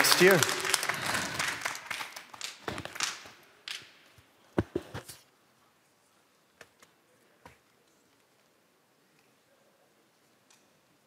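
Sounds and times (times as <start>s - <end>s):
applause: 0.0s - 3.8s.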